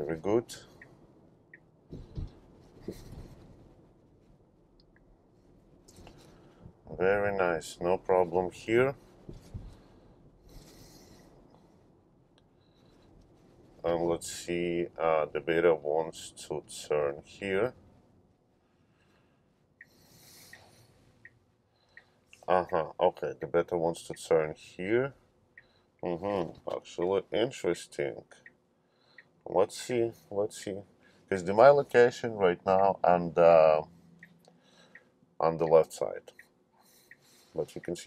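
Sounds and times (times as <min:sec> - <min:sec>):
soft breathy hiss: 0:00.0 - 0:01.1, 0:05.3 - 0:23.0, 0:23.9 - 0:36.2, 0:36.8 - 0:38.0
road and tyre noise: 0:00.0 - 0:22.7
turn signal ticking: 0:00.5 - 0:02.4, 0:19.7 - 0:22.9, 0:28.3 - 0:29.4, 0:33.8 - 0:35.4, 0:36.3 - 0:37.3
soft knocks: 0:01.9 - 0:03.4, 0:09.2 - 0:09.8.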